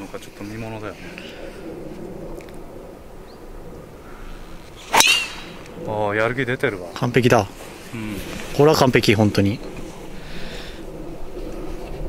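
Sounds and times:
golf club striking ball: 4.8 - 5.8.

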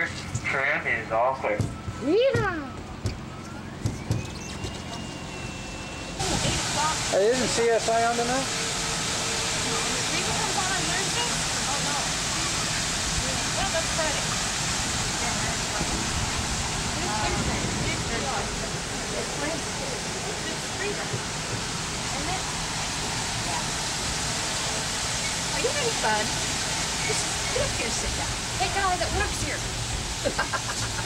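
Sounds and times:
rain on wet pavement: 6.2 - 31.0.

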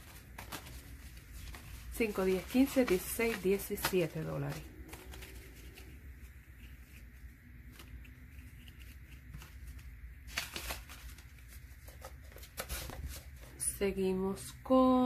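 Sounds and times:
paper banknotes rustling: 0.0 - 13.6
paper crinkles: 0.0 - 13.6
low steady hum: 0.0 - 15.0.

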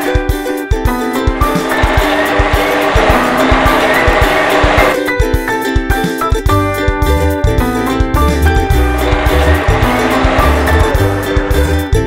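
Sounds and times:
children's music with steady beat: 0.0 - 12.0
rushing vehicle sound effect: 1.4 - 5.0, 8.4 - 12.0.

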